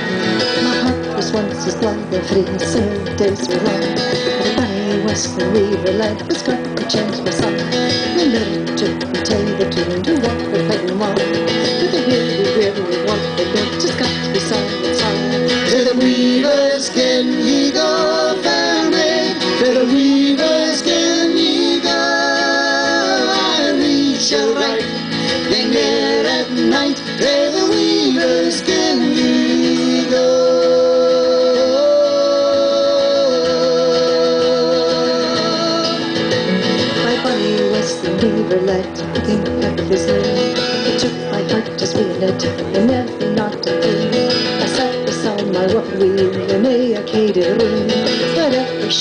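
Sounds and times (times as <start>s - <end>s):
strummed acoustic guitars: 0.0s - 49.0s.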